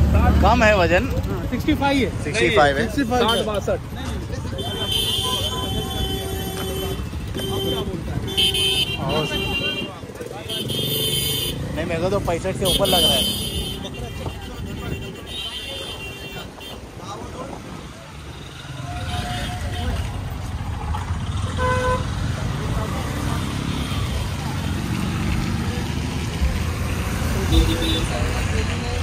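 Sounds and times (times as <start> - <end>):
traffic engines rumbling: 0.0 - 29.0.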